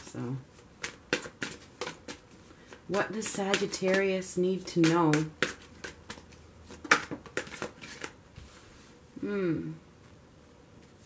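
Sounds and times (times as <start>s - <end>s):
cards being shuffled: 0.6s - 8.2s.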